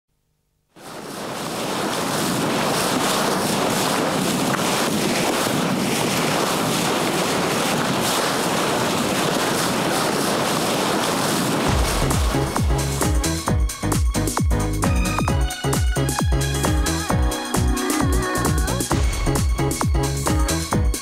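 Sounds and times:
wind: 0.8 - 15.2
sea water rushing: 0.8 - 15.3, 16.6 - 21.0
electronic music with heavy beat: 11.8 - 21.0.

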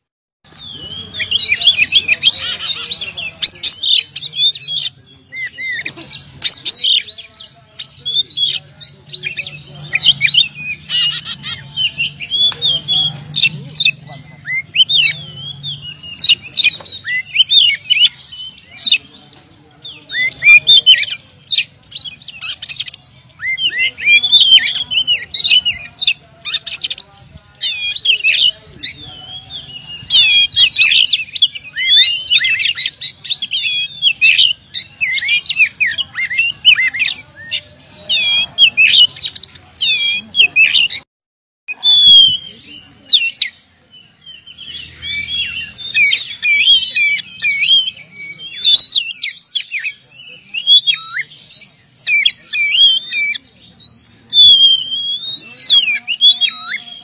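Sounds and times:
bird singing whistles and chirps: 0.5 - 41.0, 41.7 - 57.0.

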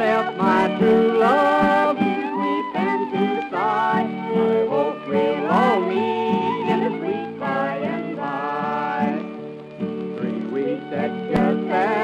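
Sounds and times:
fiddle playing sliding notes: 0.0 - 12.0.

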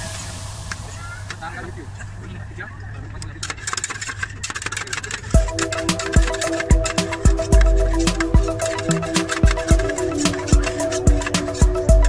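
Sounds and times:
metal spatulas scraping steel plate: 5.4 - 12.0.

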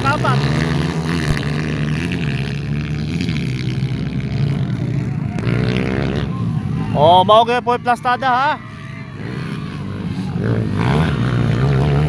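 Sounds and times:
dirt bike engines revving: 0.0 - 12.0.

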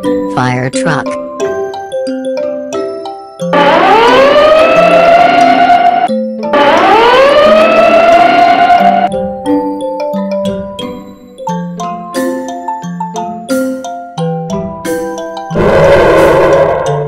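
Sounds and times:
light background music: 0.0 - 15.6
fire truck siren wailing: 3.5 - 9.1, 15.5 - 17.0.

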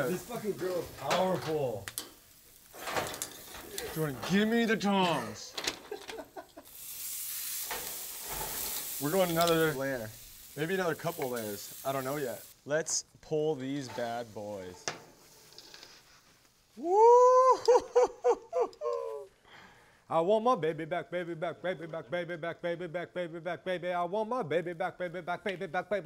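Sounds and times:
ribs sizzling on a grill: 0.0 - 18.1
man whooping excitedly: 16.8 - 19.3.

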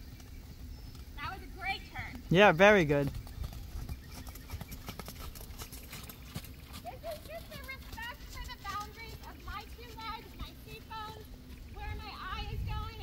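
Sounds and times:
horse hoofbeats on sand: 0.0 - 13.0.

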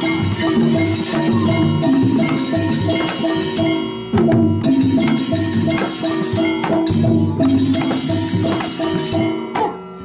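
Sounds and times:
drum strokes: 0.0 - 9.7
gamelan music: 0.0 - 10.0
metallophone notes: 0.0 - 10.0.

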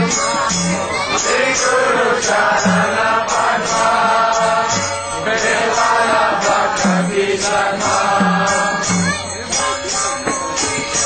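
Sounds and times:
drum beat: 0.0 - 11.0
group of voices chanting: 0.0 - 11.0
jingling hand cymbals: 0.0 - 11.0.

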